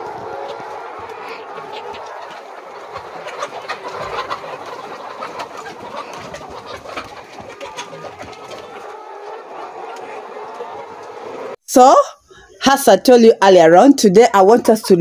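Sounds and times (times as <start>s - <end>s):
hens clucking: 0.0s - 11.6s.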